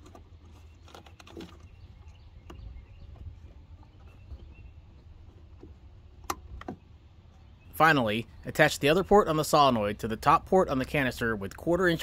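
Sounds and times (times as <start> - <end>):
low steady rumble: 1.6 - 12.0.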